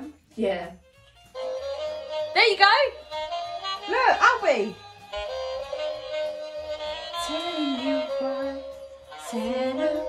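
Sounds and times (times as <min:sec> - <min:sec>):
toy playing saxophone tune: 0:01.1 - 0:10.0.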